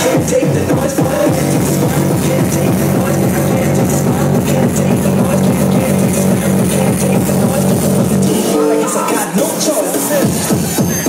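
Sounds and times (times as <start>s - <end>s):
hardcore electronic dance music: 0.0s - 11.0s
heavy bass beat pounding: 0.0s - 11.0s.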